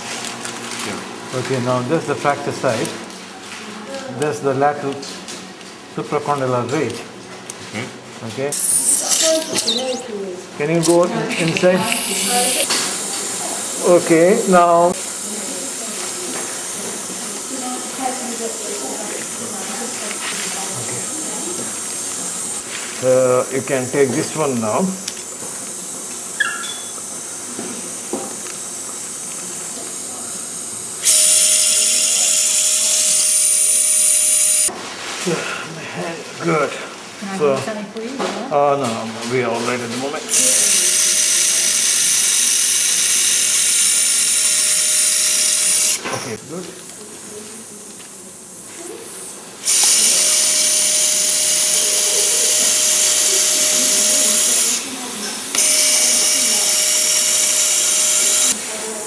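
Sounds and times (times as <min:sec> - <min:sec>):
surgical power drill running: 0:08.4 - 0:34.7, 0:39.7 - 0:47.0, 0:47.8 - 0:59.0.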